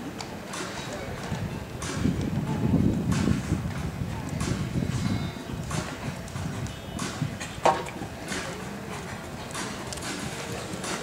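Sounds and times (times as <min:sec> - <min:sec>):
horse hoofbeats on sand: 0:00.5 - 0:11.0.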